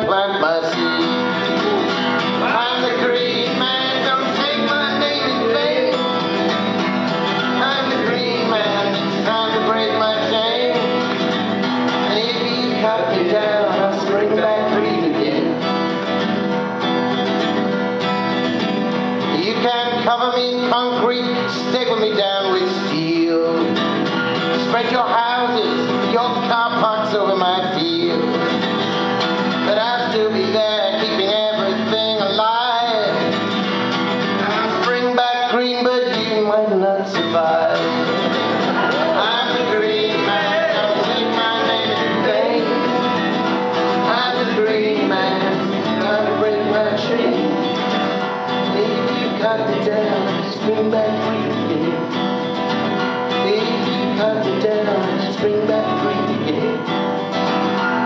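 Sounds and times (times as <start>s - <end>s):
strummed acoustic guitar: 0.0s - 58.0s.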